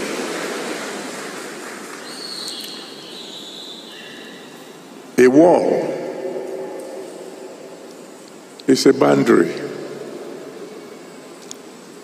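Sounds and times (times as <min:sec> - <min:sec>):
congregation applauding: 0:00.0 - 0:03.0.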